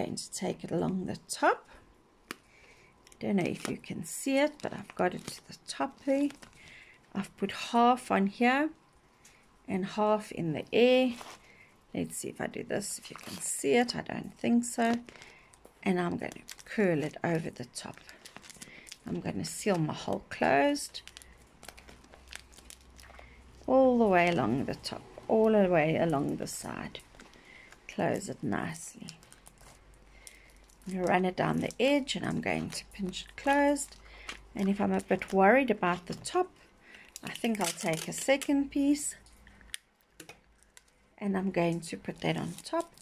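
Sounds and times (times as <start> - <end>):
sticky tape and plastic crinkling: 2.2 - 6.7, 12.9 - 36.5, 37.1 - 43.0.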